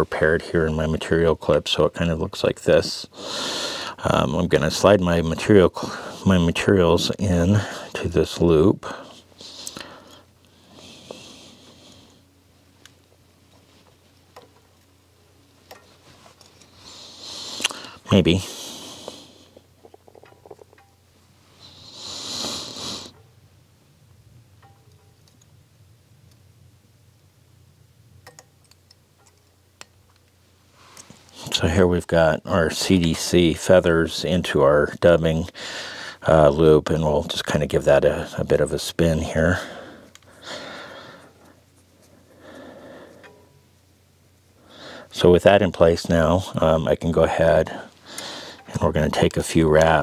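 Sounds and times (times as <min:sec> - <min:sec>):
low steady hum: 0:00.0 - 0:50.0
person breathing softly: 0:03.1 - 0:04.0, 0:08.9 - 0:12.3, 0:35.5 - 0:36.2, 0:39.6 - 0:43.4, 0:44.6 - 0:45.1, 0:47.7 - 0:48.7.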